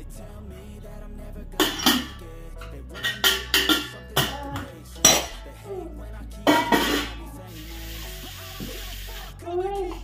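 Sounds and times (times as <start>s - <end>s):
metal clanking on cookware: 6.5s - 7.2s.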